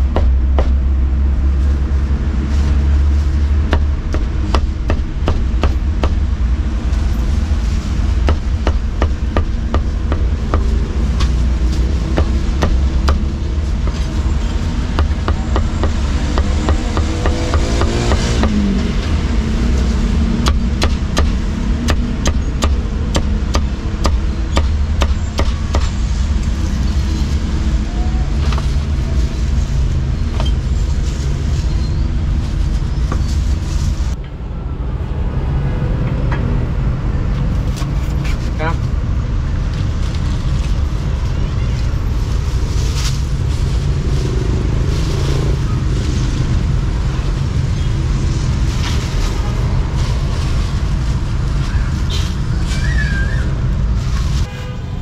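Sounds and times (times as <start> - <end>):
low traffic rumble: 0.0 - 55.0
passing engine: 9.6 - 55.0
cleaver chopping on wooden block: 20.4 - 25.9.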